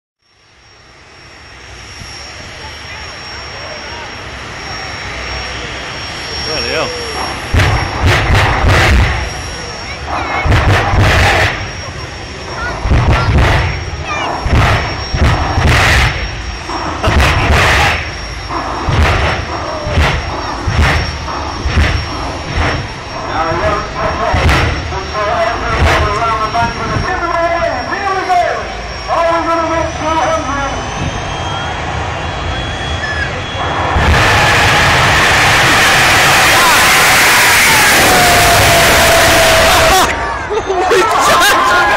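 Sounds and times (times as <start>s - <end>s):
jet engine whine: 0.2s - 41.9s
afterburner bangs: 7.1s - 11.9s, 12.5s - 29.1s, 31.0s - 39.9s.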